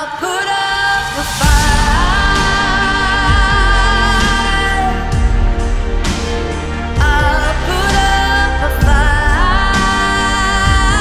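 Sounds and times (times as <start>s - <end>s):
woman singing a long note: 0.0s - 5.5s, 7.0s - 11.0s
orchestral pop arrangement: 0.0s - 11.0s.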